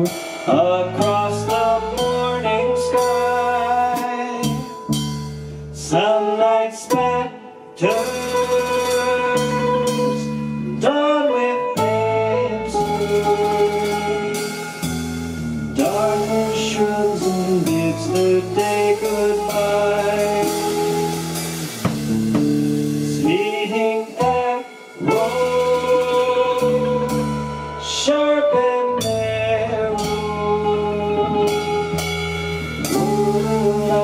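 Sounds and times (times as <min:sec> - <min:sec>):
man singing: 0:00.0 - 0:04.9, 0:05.8 - 0:14.9, 0:15.7 - 0:21.4, 0:23.1 - 0:32.1, 0:32.8 - 0:34.0
live rock band: 0:00.0 - 0:34.0.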